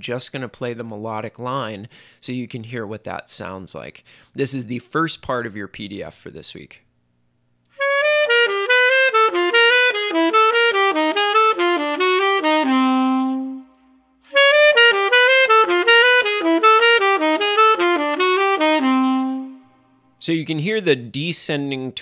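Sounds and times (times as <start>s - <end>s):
solo saxophone jazz line: 7.7s - 19.7s.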